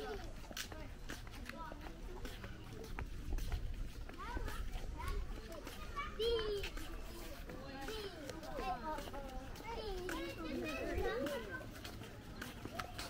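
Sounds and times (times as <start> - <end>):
chatter of people and children: 0.0 - 13.0.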